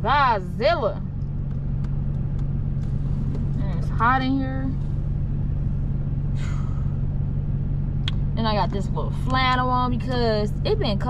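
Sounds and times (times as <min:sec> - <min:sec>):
car engine idling: 0:00.0 - 0:11.0
breathy exhale: 0:06.3 - 0:07.1.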